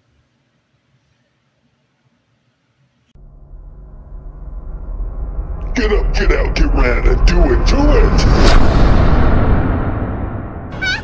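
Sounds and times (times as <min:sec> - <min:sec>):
deep rumbling boom: 0:03.2 - 0:11.0.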